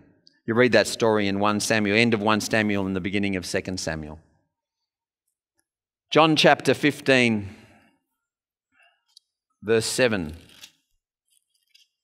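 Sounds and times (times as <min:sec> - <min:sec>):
man speaking: 0:00.4 - 0:04.2, 0:09.6 - 0:10.5.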